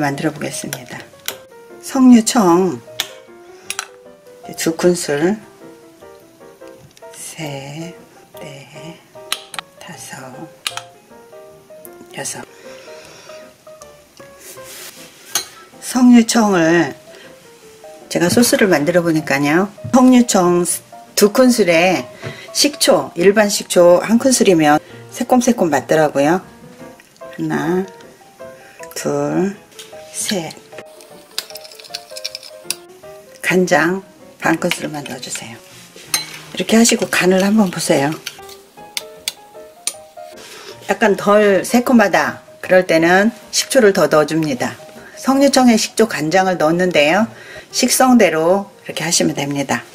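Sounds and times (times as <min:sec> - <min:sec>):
soft background music: 0:00.0 - 0:49.9
metal spoon clinking ceramic bowl: 0:15.3 - 0:15.6, 0:31.3 - 0:32.8, 0:36.1 - 0:36.4
spoon scraping ceramic bowl: 0:36.1 - 0:36.6.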